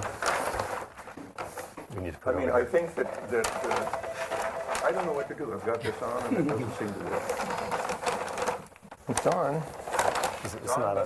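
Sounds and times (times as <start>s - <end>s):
rapid clicking and rustling: 0.0s - 1.9s, 2.7s - 11.0s.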